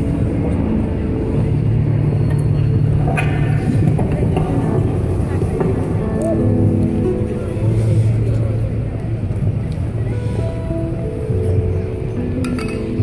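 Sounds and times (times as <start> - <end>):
traffic rumble: 0.0 - 13.0
music with held notes: 4.4 - 13.0.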